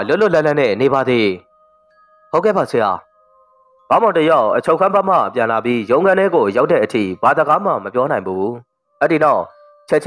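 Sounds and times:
narrator speaking: 3.9 - 10.0.

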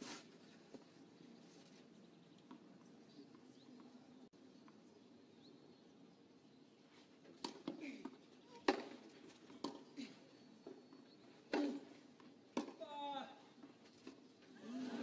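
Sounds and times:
tennis ball struck by rackets: 12.6 - 12.8.

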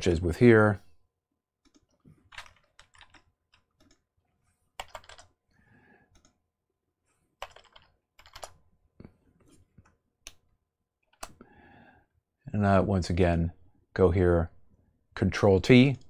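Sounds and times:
computer keyboard clicks: 1.6 - 4.0, 4.8 - 5.4, 7.4 - 8.6.

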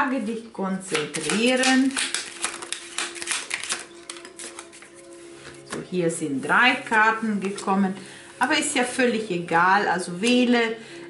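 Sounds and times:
cards being shuffled: 0.9 - 5.2
soft music with held note: 0.9 - 11.0.

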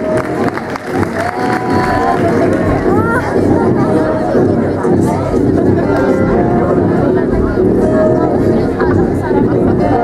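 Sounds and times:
crowd chattering and calling out: 0.0 - 10.0.

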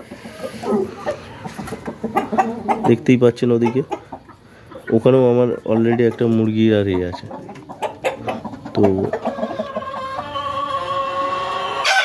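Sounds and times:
chickens clucking: 0.0 - 12.0
long drawn-out chicken call: 9.2 - 12.0.

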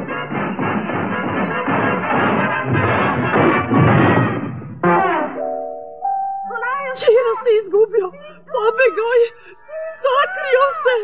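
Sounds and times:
high cartoon voice crying: 6.9 - 11.0.

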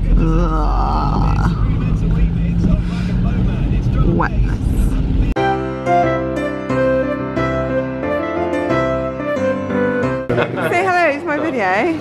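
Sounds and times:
car engine and road rumble: 0.0 - 5.4.

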